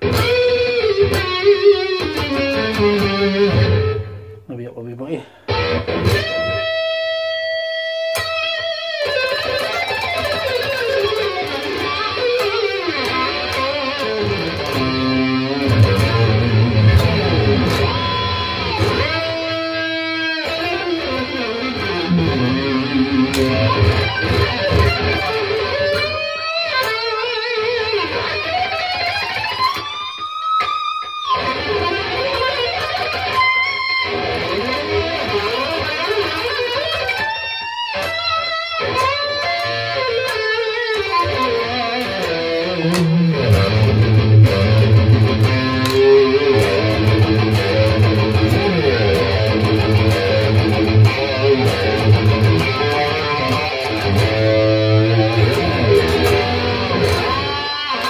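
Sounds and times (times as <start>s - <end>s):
electric guitar with echo: 0.0s - 58.0s.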